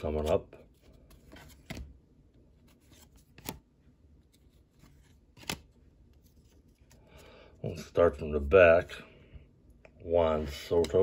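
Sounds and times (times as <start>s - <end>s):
cards rustling: 0.0s - 7.4s
card edges clicking: 5.4s - 5.7s.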